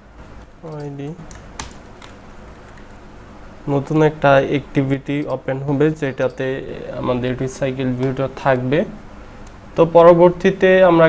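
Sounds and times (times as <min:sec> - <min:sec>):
computer keyboard typing: 0:00.7 - 0:03.0.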